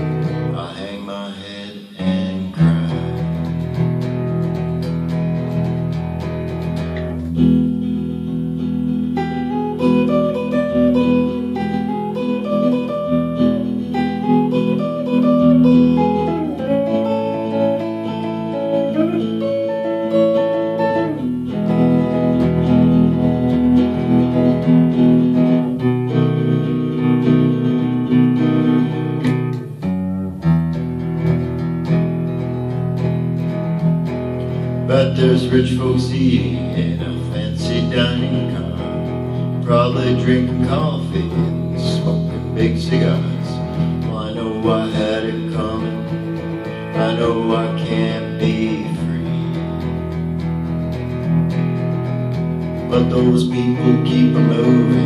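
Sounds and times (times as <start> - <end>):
strummed low guitar chords: 0.0 - 1.2, 2.0 - 55.0
electric guitar lead phrases: 0.0 - 55.0.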